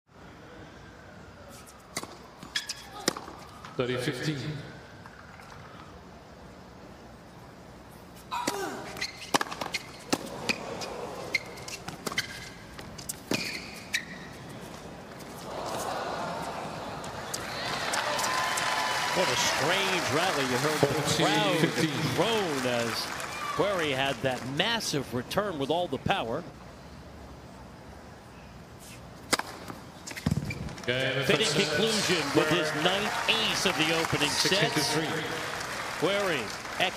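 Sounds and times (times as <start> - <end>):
tennis ball bouncing: 1.9 - 3.4, 8.4 - 13.6, 29.3 - 30.6
racket striking tennis ball: 8.4 - 10.7, 29.2 - 30.6.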